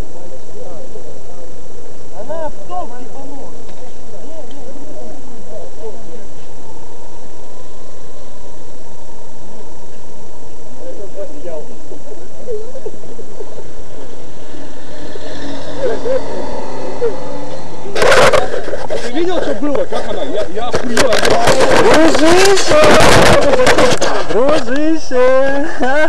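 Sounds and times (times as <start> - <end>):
vehicle engine running: 0.0 - 25.1
people talking over each other: 0.0 - 26.0.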